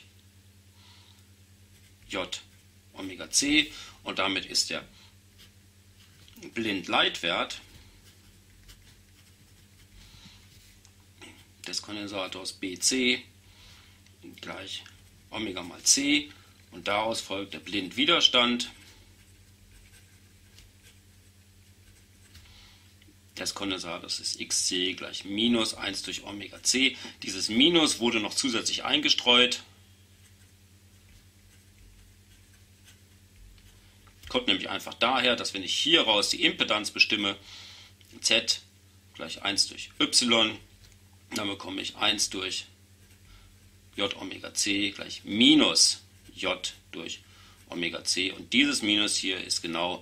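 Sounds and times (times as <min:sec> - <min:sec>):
low electrical hum: 0:00.0 - 0:50.0
pen scratching on paper: 0:08.0 - 0:10.0, 0:18.2 - 0:22.4, 0:30.2 - 0:33.8, 0:43.0 - 0:43.3.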